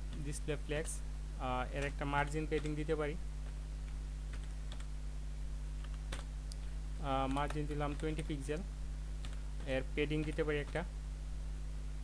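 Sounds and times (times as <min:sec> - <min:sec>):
low electrical hum: 0:00.0 - 0:12.0
keyboard typing: 0:01.7 - 0:04.9, 0:05.8 - 0:08.6, 0:09.2 - 0:10.9.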